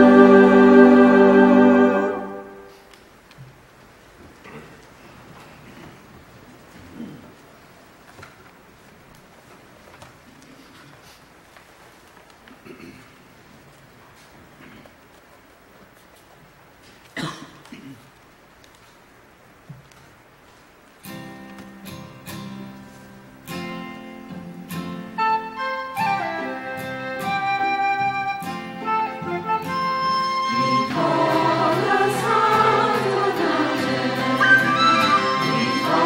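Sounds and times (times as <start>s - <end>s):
church choir singing: 0.0s - 2.7s, 29.6s - 36.0s
throat clearing: 4.4s - 6.0s, 6.8s - 7.4s, 12.6s - 13.2s, 14.6s - 15.0s, 17.1s - 18.1s
person coughing: 12.6s - 13.2s, 17.2s - 18.1s
instrumental accompaniment: 23.4s - 36.0s.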